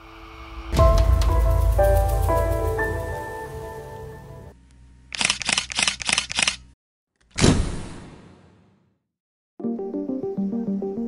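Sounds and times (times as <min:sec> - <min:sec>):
camera shutter clicking: 0:05.1 - 0:06.7.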